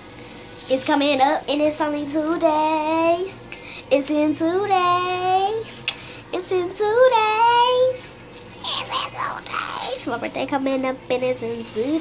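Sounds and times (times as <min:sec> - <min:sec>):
girl singing: 0:00.7 - 0:05.7, 0:06.3 - 0:12.0.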